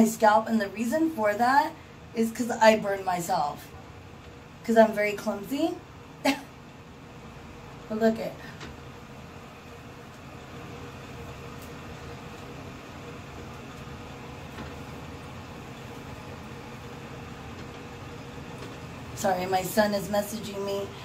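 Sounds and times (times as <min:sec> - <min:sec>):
electric fan humming: 0:00.0 - 0:21.0.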